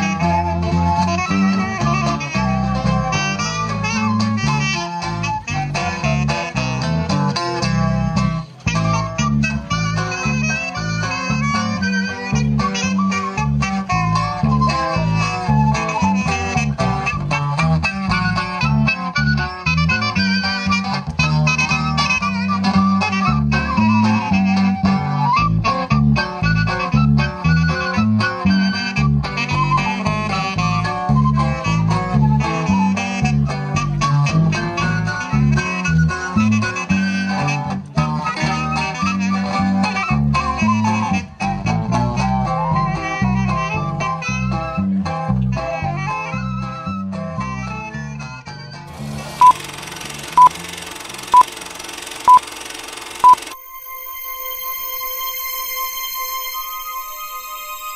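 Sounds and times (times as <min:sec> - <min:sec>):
accordion dance band music: 0:00.0 - 0:46.4, 0:48.8 - 0:53.6
short electronic beeps: 0:49.4 - 0:49.6, 0:50.4 - 0:50.6, 0:51.3 - 0:57.9.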